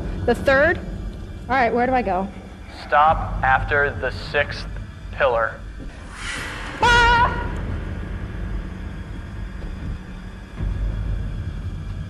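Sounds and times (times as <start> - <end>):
ominous suspense music drone: 0.0 - 12.0.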